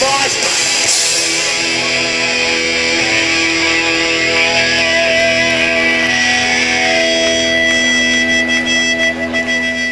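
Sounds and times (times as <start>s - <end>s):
electric guitar feedback tones: 0.0s - 9.9s.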